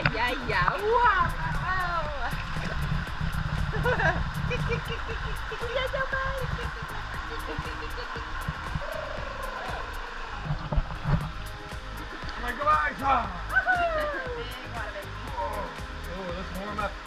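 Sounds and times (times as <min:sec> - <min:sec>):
background music with light beat: 0:00.0 - 0:17.0
pool water splashing: 0:00.0 - 0:17.0.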